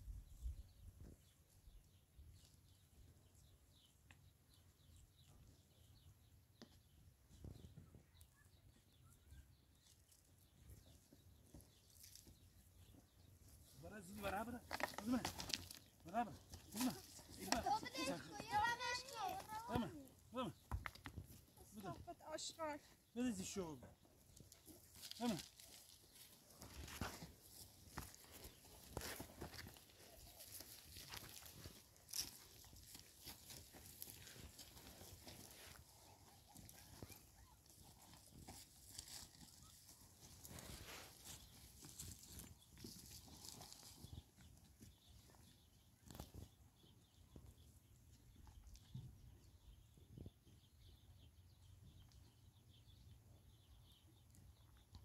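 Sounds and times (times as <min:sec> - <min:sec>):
footsteps on stony ground: 0:09.8 - 0:47.7
stones crunching underfoot: 0:14.2 - 0:20.0, 0:24.2 - 0:44.2.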